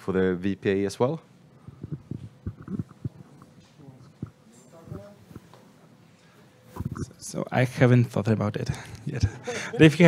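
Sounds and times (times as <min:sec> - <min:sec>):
microphone handling thumps: 0:01.7 - 0:03.2.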